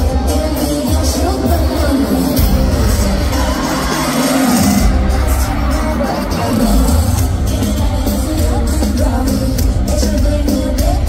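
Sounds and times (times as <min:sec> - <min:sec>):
live pop music: 0:00.0 - 0:11.0
crowd cheering: 0:02.0 - 0:09.5.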